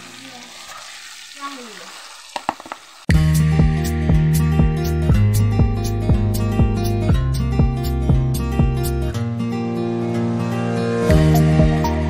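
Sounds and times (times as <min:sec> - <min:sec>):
chicken sizzling in hot oil: 0:00.0 - 0:03.1.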